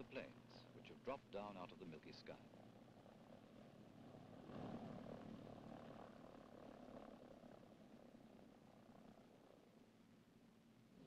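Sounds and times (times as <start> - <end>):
propeller plane engines droning: 0.0 - 11.0.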